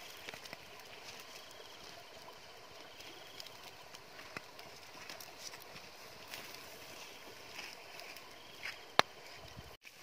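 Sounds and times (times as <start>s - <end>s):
wood fire crackling: 0.0s - 10.0s.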